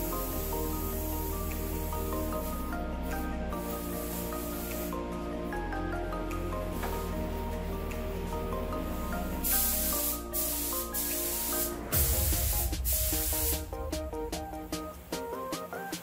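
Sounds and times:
paint spray gun hissing: 0.0 - 5.1, 8.9 - 14.2.

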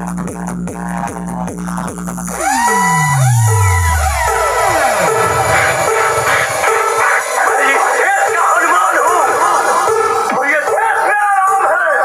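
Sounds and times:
downward pitch sweeps: 2.4 - 7.4
loud electronic dance music: 2.4 - 7.5.

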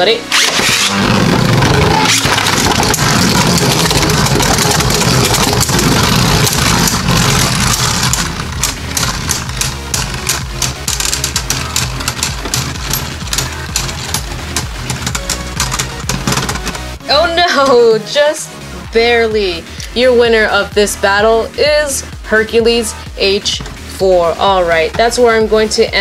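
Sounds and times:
spinning tops whirring on plastic: 0.3 - 17.0
spinning tops clashing and rattling: 2.0 - 17.0.

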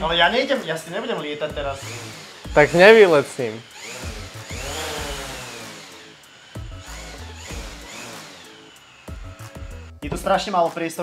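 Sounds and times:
drone propeller motors whining: 1.7 - 10.0.

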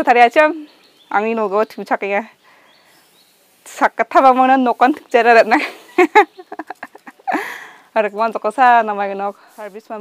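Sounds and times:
faint outdoor background: 0.0 - 10.0
woman speaking close to microphone: 3.7 - 5.7, 8.0 - 10.0.

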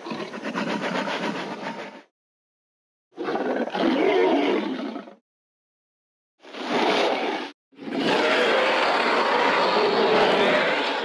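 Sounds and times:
dinosaur growling roar: 7.8 - 11.0.

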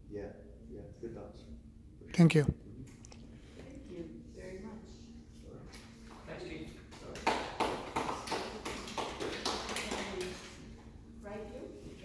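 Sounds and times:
people clapping: 6.0 - 10.7.

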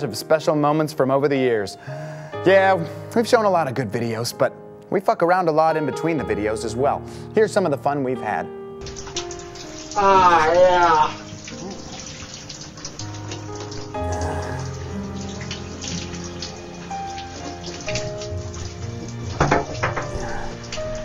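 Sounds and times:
shower water spraying: 8.8 - 21.0.

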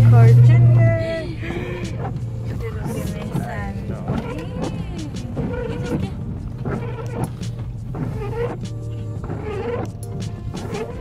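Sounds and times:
car cabin hum: 0.0 - 11.0.

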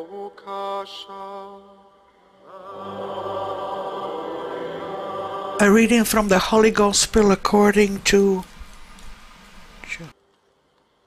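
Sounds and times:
open microphone hiss: 0.0 - 11.0.

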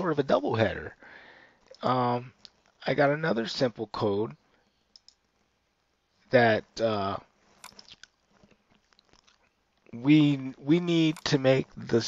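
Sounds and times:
faint small clicks: 4.9 - 5.3, 7.6 - 9.9.

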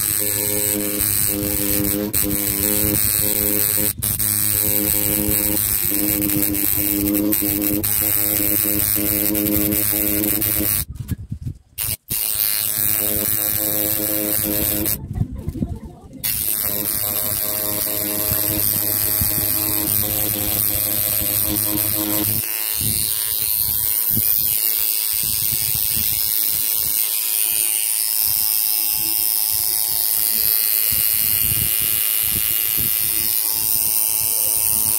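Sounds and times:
tattoo machine buzzing: 0.0 - 10.9, 11.8 - 15.0, 16.2 - 34.9.

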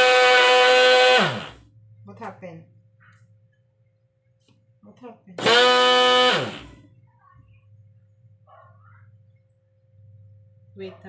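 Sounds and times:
blender motor whining and spinning down: 0.0 - 1.6, 5.4 - 6.8.

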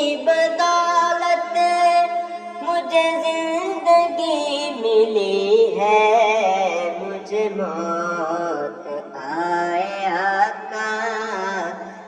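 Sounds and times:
person singing long melodic notes: 0.0 - 12.0.

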